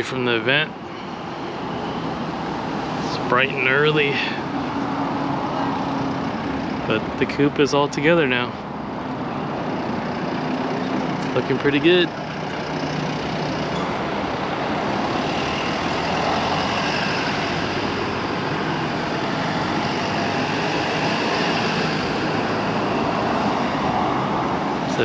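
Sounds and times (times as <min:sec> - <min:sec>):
road vehicle rumble and hiss: 0:00.0 - 0:25.0.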